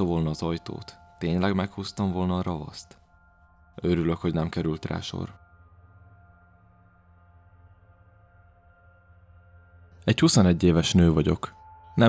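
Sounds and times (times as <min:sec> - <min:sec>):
ambient music drone: 0:00.0 - 0:12.0.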